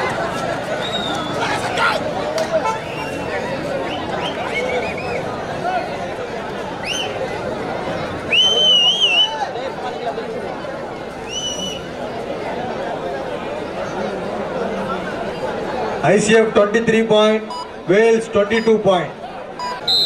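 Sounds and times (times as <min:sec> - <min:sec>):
crowd chattering: 0:00.0 - 0:20.0
high whistles: 0:08.3 - 0:09.4, 0:11.3 - 0:11.9, 0:19.6 - 0:20.0.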